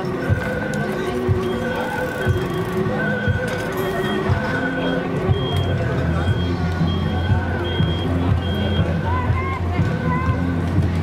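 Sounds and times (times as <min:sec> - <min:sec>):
ambulance siren alternating tones: 0:01.4 - 0:09.0.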